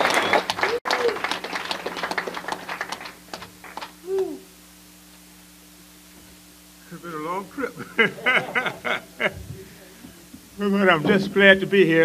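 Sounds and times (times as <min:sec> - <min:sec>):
small audience applauding: 0:00.0 - 0:04.4
faint steady hum: 0:00.0 - 0:12.0.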